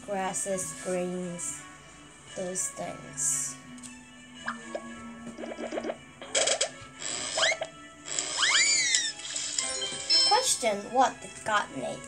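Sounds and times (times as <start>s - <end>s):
soft background music: 0.0s - 12.0s
cartoon whistle swoops: 8.4s - 9.1s.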